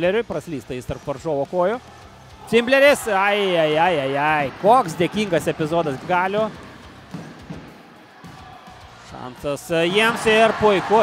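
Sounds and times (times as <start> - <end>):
indoor hall background noise: 0.0 - 11.0.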